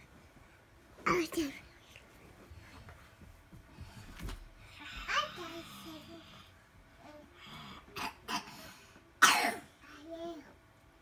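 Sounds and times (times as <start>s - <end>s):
child coughing: 7.9s - 9.8s.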